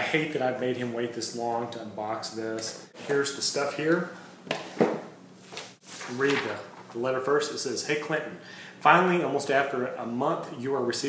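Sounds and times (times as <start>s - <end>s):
paper rustling: 5.4s - 7.1s.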